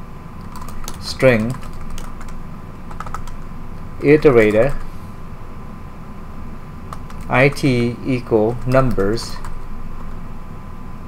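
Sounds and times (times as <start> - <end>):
computer keyboard typing: 0.4 - 3.4, 4.0 - 4.9, 6.9 - 10.2.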